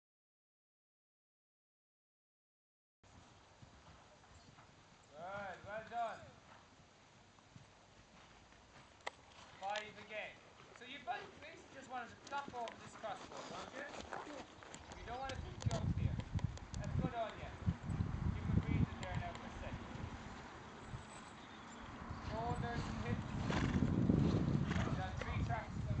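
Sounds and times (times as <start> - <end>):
horse hoofbeats on sand: 3.1 - 17.5, 22.3 - 26.0.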